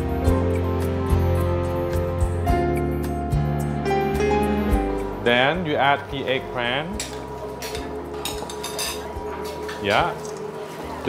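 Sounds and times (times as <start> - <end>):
soft background music: 0.0 - 11.0
utensils clinking against pans: 6.9 - 11.0.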